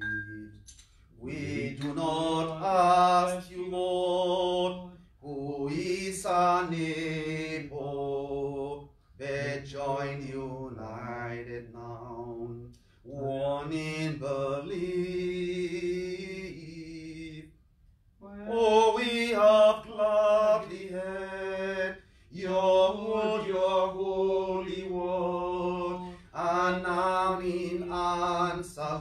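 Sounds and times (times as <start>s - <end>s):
man singing a hymn: 1.2s - 17.5s, 18.5s - 29.0s
breaths: 22.0s - 22.4s, 26.0s - 26.4s.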